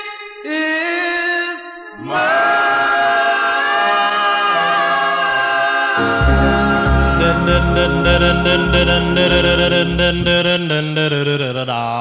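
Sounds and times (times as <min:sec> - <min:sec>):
vocal group singing harmony: 0:01.9 - 0:11.1.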